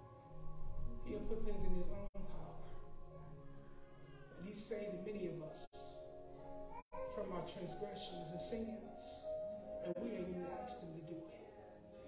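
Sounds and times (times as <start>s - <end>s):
background music: 0.0s - 12.0s
man's voice through microphone: 1.0s - 3.2s, 4.2s - 6.2s, 7.0s - 12.0s.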